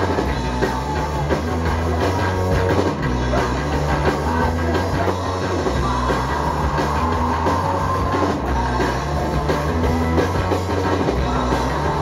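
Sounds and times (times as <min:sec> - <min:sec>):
distorted electric guitars: 0:00.0 - 0:12.0
drums: 0:00.0 - 0:12.0.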